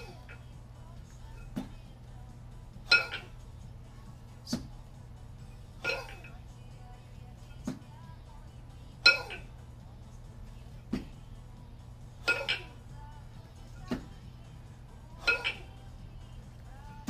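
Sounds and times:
kettlebells clanking together: 12.3s - 12.7s, 15.2s - 15.6s.

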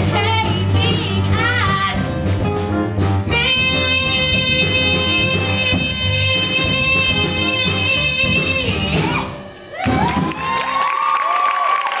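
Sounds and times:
audience cheering and whooping: 9.6s - 12.0s.

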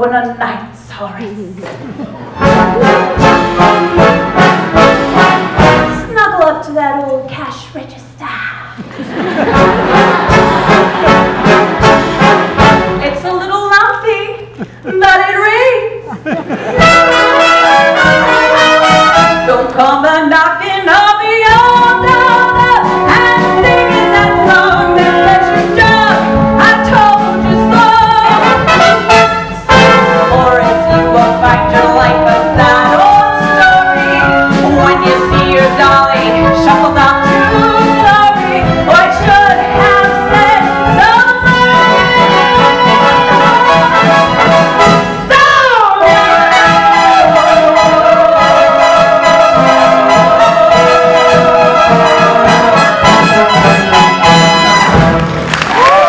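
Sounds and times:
pit orchestra playing show tune: 2.0s - 6.3s, 9.0s - 13.5s, 16.6s - 19.9s, 21.4s - 56.0s.

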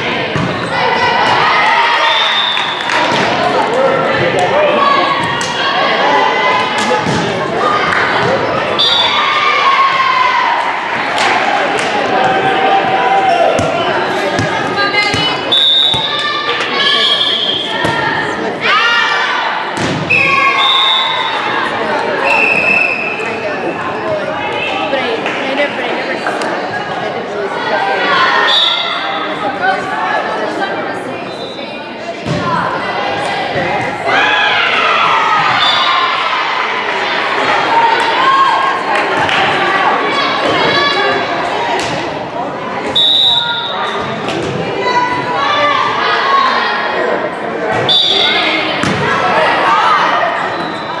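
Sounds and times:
girls calling and chattering: 0.0s - 51.0s.

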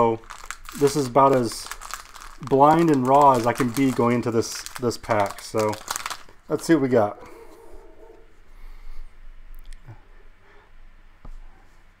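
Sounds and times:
trading cards rustling: 0.0s - 6.8s.

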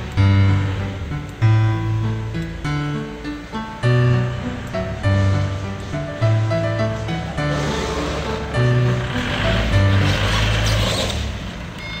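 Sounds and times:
background music with bass: 0.0s - 11.1s
hiss-like swell: 5.6s - 10.7s.

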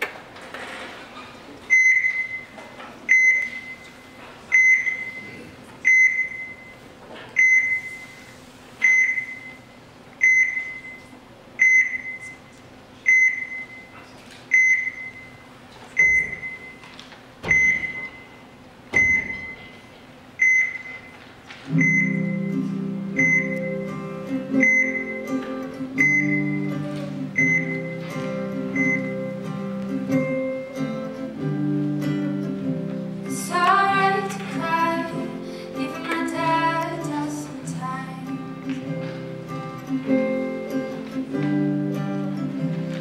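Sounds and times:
high electronic beep: 23.2s - 23.7s, 24.6s - 25.2s.

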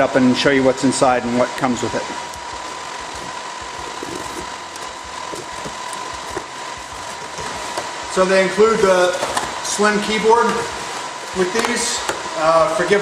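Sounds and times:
cooling fans rushing hiss: 0.0s - 13.0s
thin steady whine: 0.0s - 13.0s.

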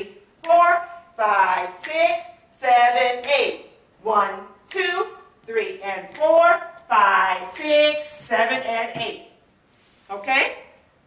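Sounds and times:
woman calling out counts: 0.0s - 9.3s, 10.1s - 10.7s.

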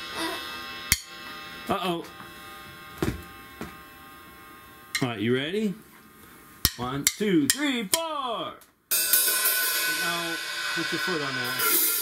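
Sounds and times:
drum kit strokes: 8.9s - 12.0s.

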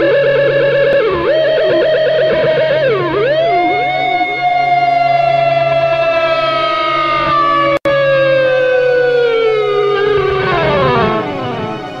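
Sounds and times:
electric guitar note sliding down: 0.0s - 12.0s.

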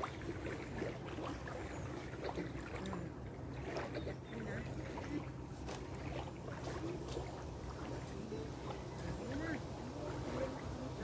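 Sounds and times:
people talking quietly: 0.0s - 11.0s
steady low hum: 0.0s - 11.0s.

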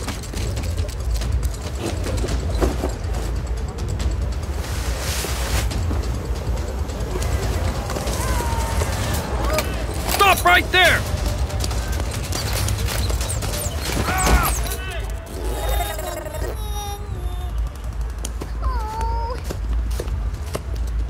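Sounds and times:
background music: 0.0s - 21.0s
voices shouting: 6.2s - 16.0s.

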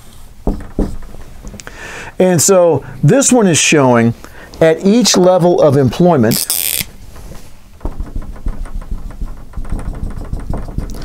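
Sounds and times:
marker tapping on whiteboard: 0.4s - 1.7s, 7.8s - 11.0s.

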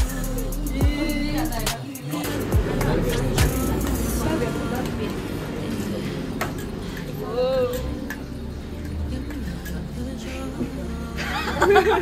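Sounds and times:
people talking quietly: 0.0s - 12.0s.

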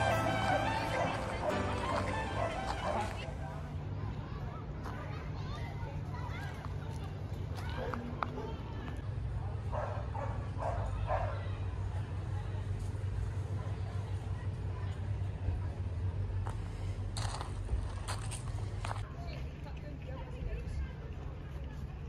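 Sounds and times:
footsteps on gravel: 0.0s - 3.3s, 16.4s - 19.1s
faint distant voices: 0.0s - 22.0s.

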